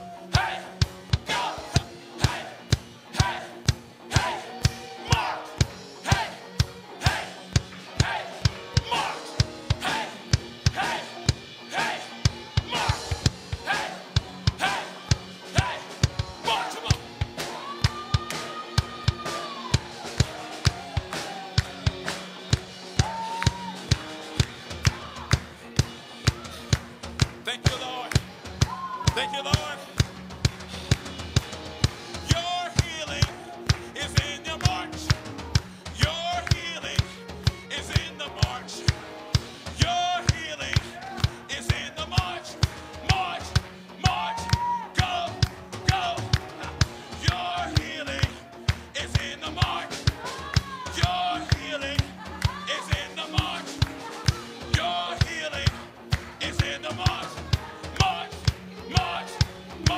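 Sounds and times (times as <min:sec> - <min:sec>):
drum kit steady beat: 0:00.0 - 0:59.9.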